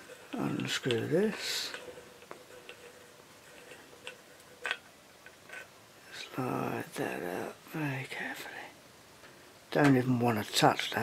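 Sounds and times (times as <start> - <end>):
lamp housing unscrewing ticks: 1.7 - 5.7.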